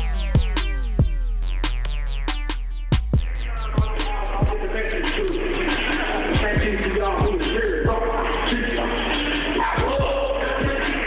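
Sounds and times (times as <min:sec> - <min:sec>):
deep kick drums: 0:00.0 - 0:11.0
hip-hop beat over a pa: 0:00.0 - 0:11.0.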